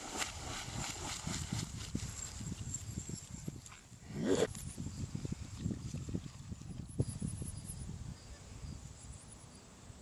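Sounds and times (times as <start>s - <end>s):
paws splashing in shallow water: 0.0s - 4.0s.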